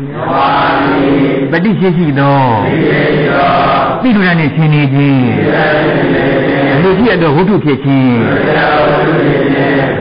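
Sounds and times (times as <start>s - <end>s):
man chanting: 1.3s - 5.9s, 6.5s - 8.6s.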